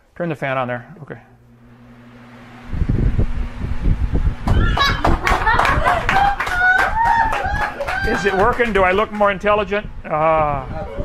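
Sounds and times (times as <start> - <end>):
electric fan hiss: 0.0 - 11.0
wind buffeting microphone: 1.8 - 11.0.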